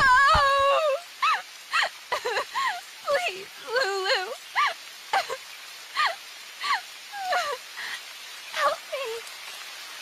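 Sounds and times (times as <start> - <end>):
woman crying and sobbing: 0.0 - 5.4, 6.0 - 8.0.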